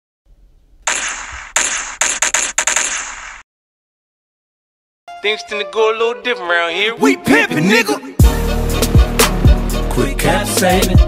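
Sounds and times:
gunshots: 0:00.9 - 0:03.4.

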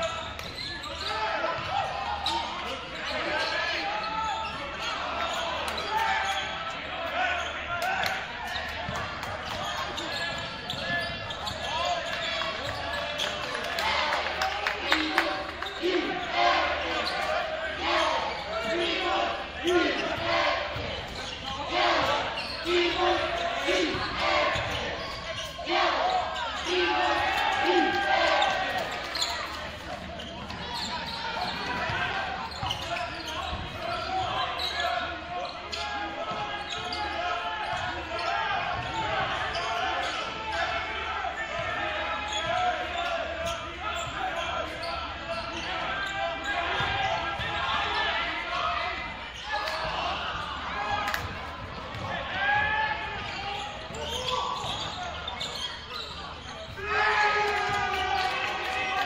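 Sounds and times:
echoing voices: 0:00.0 - 0:59.0.

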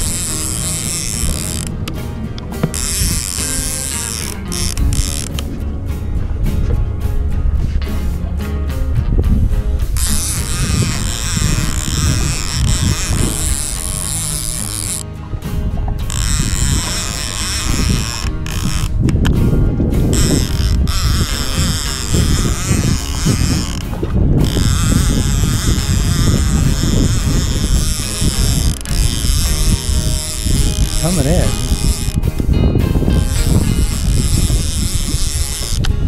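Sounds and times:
fishing reel being cranked: 0:00.0 - 0:02.0, 0:02.6 - 0:05.6, 0:10.0 - 0:15.2, 0:16.0 - 0:19.4, 0:20.0 - 0:36.0
background music: 0:00.0 - 0:36.0.

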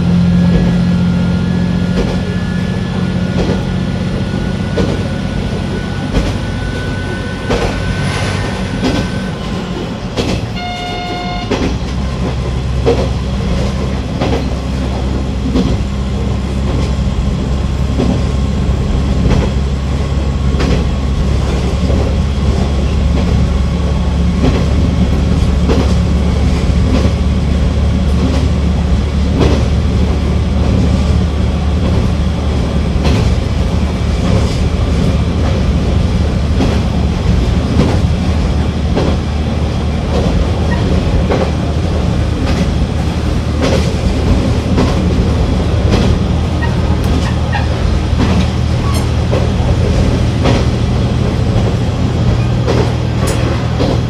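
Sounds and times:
diesel railcar engine drone: 0:00.0 - 0:54.0
train horn blast: 0:10.5 - 0:11.8.

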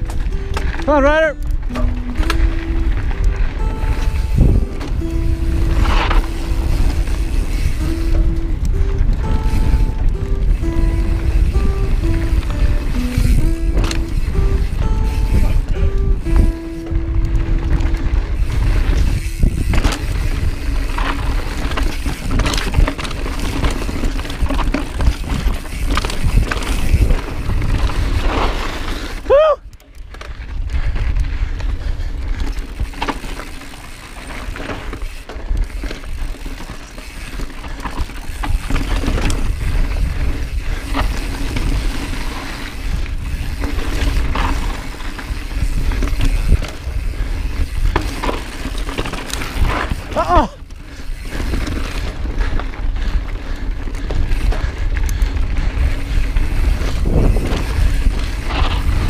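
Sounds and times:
bike rattling and clicking: 0:00.0 - 0:59.0
wind rumble on microphone: 0:00.0 - 0:59.0.

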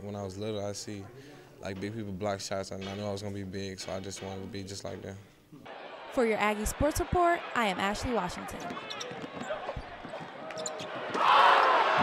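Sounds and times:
crowd noise: 0:05.6 - 0:12.0
basketball bouncing: 0:08.3 - 0:11.3
shoe squeaks: 0:08.5 - 0:11.2.

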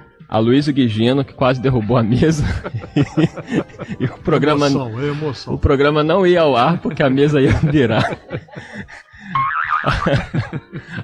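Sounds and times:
people laughing: 0:01.4 - 0:05.6, 0:06.6 - 0:11.0
high warbling laugh: 0:07.8 - 0:10.6.

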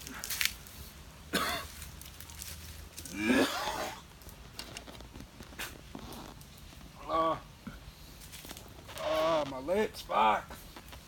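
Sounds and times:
man coughing: 0:01.3 - 0:01.7.

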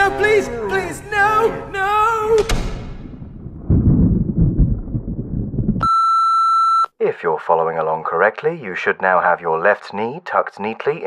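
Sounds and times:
low rumbling: 0:01.7 - 0:05.9
high electronic beep: 0:05.8 - 0:06.9.

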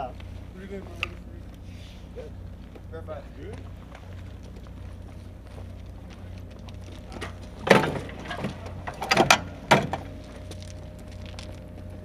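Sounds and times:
steady low hum: 0:00.0 - 0:12.0
metal knocks and clanks: 0:07.2 - 0:10.2.

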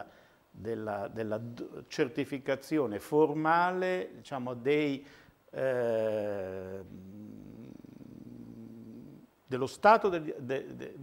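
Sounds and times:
man humming hesitantly: 0:05.6 - 0:09.3.

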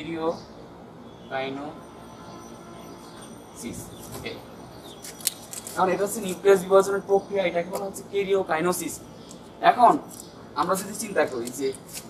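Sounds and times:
young man speaking: 0:03.6 - 0:04.5, 0:05.8 - 0:09.0, 0:09.6 - 0:11.8.

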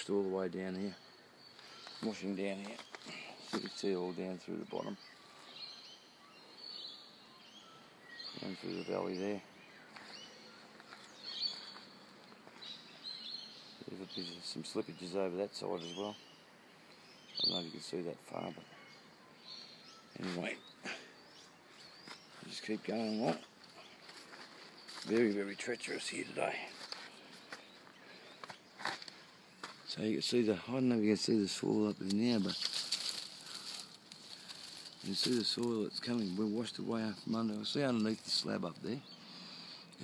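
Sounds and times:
birds chirping: 0:00.0 - 0:40.0
faint outdoor hiss: 0:00.0 - 0:40.0
footsteps on leaf litter: 0:09.9 - 0:12.8, 0:20.2 - 0:20.6, 0:21.8 - 0:30.0, 0:32.0 - 0:36.5
brushing through vegetation: 0:32.0 - 0:36.6.

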